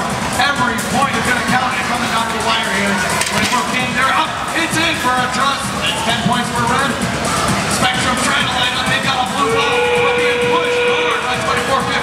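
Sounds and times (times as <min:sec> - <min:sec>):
arena music: 0:00.0 - 0:12.0
crowd noise: 0:00.0 - 0:12.0.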